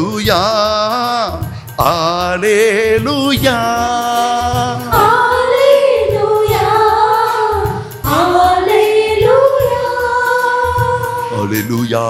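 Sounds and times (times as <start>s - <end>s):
steady low beat: 0.0s - 11.8s
person singing devotional song: 0.0s - 12.0s.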